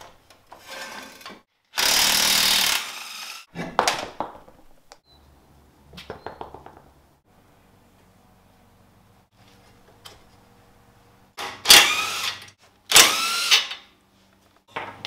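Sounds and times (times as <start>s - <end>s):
pneumatic impact wrench: 1.8s - 3.4s, 11.4s - 13.8s.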